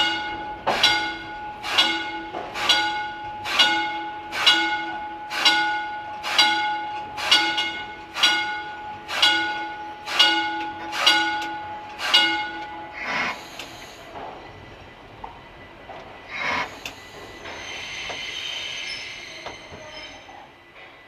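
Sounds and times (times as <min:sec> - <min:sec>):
railway car bell ringing: 0:00.0 - 0:13.8, 0:17.4 - 0:20.5.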